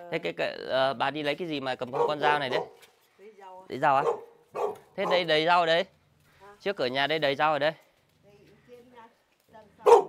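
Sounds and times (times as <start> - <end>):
dog barking: 1.9 - 2.8, 4.0 - 5.3.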